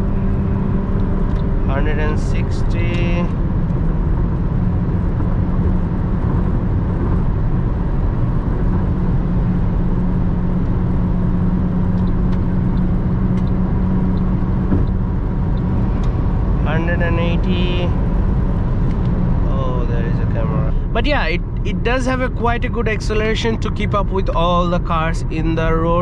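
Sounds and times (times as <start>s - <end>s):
steady engine drone: 0.0s - 26.0s
tyre and road noise: 0.0s - 26.0s.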